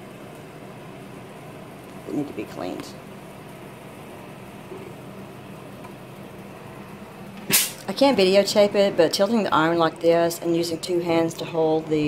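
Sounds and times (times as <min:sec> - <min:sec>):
steady low hum: 0:00.0 - 0:12.0
loud hiss: 0:07.5 - 0:07.9.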